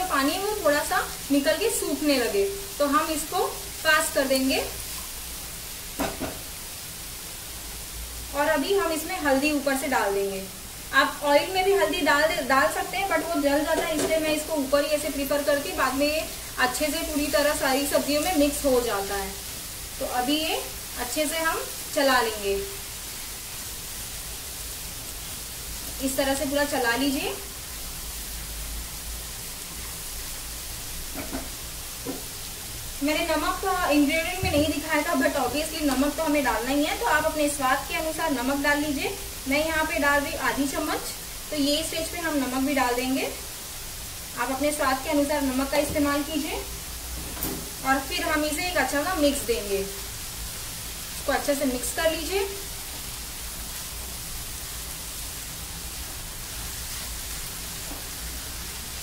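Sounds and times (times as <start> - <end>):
vegetables sizzling in oil: 0.0 - 59.0.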